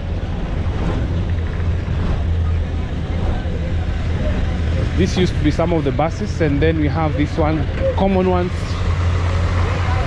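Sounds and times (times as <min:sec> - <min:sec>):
bus engine rumble: 0:00.0 - 0:10.0
faint voices: 0:01.4 - 0:10.0.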